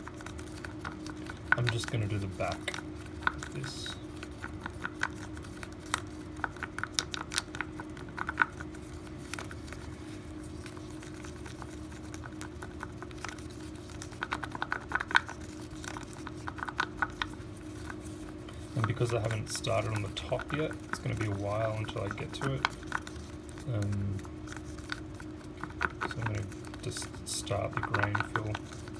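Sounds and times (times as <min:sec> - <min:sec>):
steady low hum: 0:00.0 - 0:28.9
stick scraping plastic cup: 0:00.7 - 0:05.4, 0:25.5 - 0:28.9.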